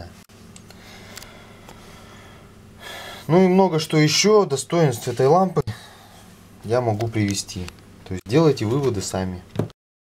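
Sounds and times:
faint hum: 0.0s - 9.6s
person breathing in: 0.7s - 3.3s, 5.7s - 6.3s.

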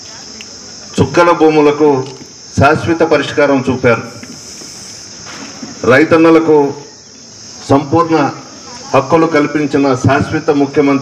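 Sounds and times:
high-pitched hiss: 0.0s - 11.0s
man speaking: 5.8s - 6.9s, 7.7s - 11.0s.

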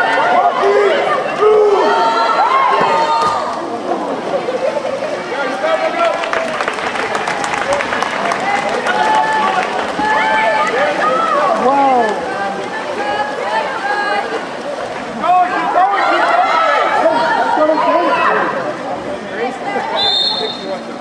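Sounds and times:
crowd shouting and cheering: 0.0s - 21.0s.

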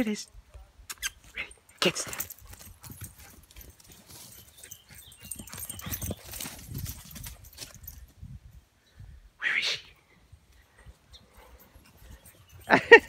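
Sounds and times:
footsteps crunching on dirt path: 2.1s - 8.1s.

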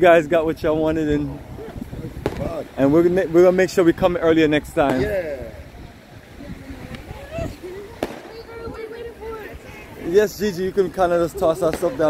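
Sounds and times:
firecracker pop: 2.2s - 2.6s, 8.0s - 8.4s.

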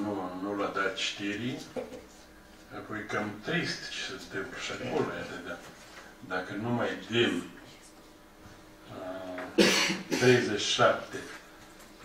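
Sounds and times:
loud cough: 9.6s - 10.5s.

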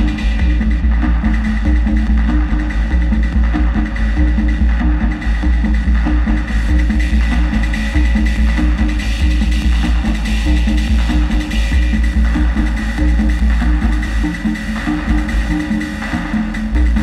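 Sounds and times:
pulsing sub-bass: 0.0s - 17.0s
repeating low synth notes: 0.0s - 17.0s.

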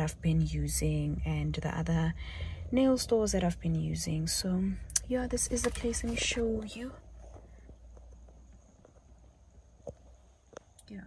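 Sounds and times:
car cabin hum: 2.7s - 7.5s.

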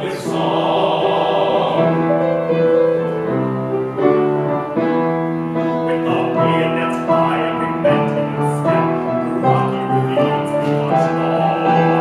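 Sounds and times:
male choir singing in harmony: 0.0s - 2.7s, 5.8s - 12.0s.

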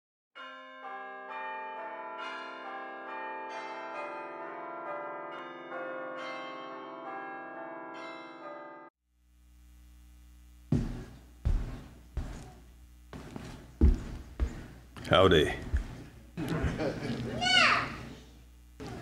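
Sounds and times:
bells ringing a peal: 0.4s - 8.9s
low steady hum: 9.2s - 19.0s.

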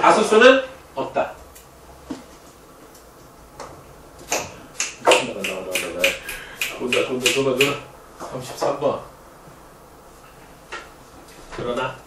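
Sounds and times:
fingers snapping: 4.3s - 7.8s.

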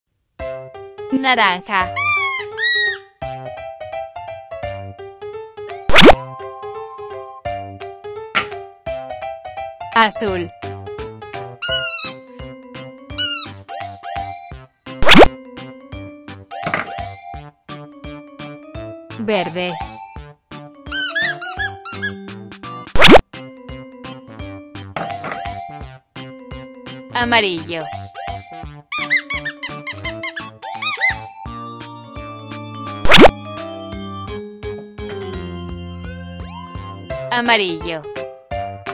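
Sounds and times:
children's background music: 0.4s - 38.9s
rubber squeeze toy squeaks: 2.0s - 3.1s, 11.6s - 12.4s, 13.2s - 14.4s, 20.9s - 22.2s, 27.9s - 31.4s.

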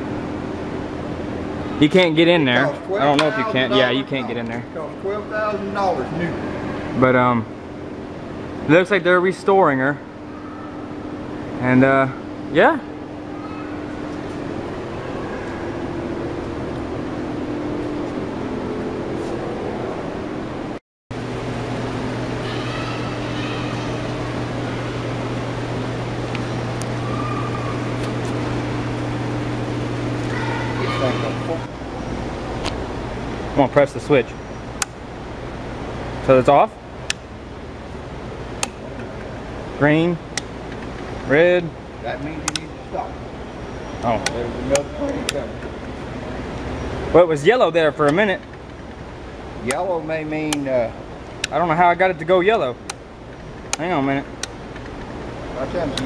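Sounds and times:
mechanical hum with hiss: 0.0s - 56.0s
sharp switch clicks: 38.6s - 38.8s, 42.4s - 42.7s.

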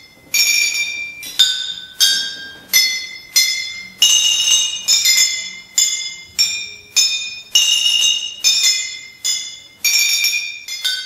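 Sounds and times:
glass bottles struck ringing: 0.0s - 11.0s.

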